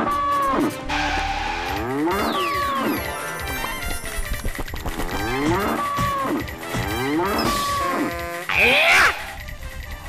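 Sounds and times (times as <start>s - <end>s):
cartoon buffalo mooing: 0.0s - 3.1s, 5.2s - 9.3s.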